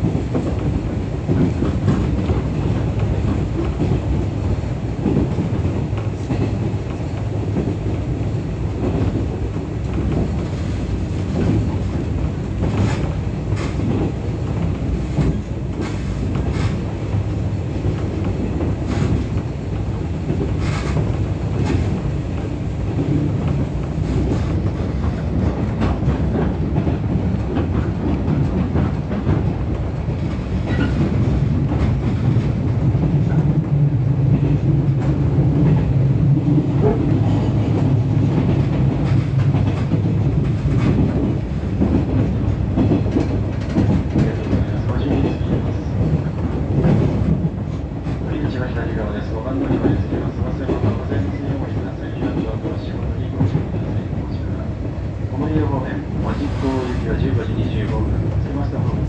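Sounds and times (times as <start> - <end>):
track clacks: 0.0 - 59.0
train wheels rumbling on rail: 0.0 - 59.0.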